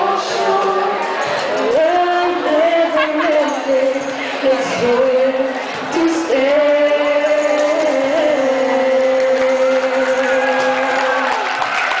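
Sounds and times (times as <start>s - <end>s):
girl and boy singing together: 0.0s - 11.5s.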